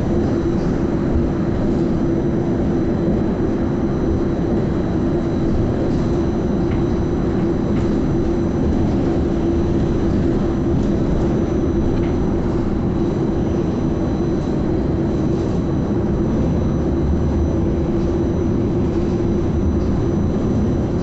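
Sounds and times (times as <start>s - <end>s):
bus drivetrain and road noise: 0.0s - 4.0s, 4.6s - 21.0s
constant low hum: 0.0s - 21.0s.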